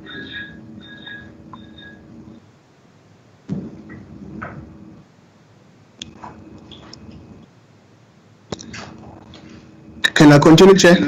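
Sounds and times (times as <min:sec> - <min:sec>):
sudden knock: 0:03.5 - 0:04.6.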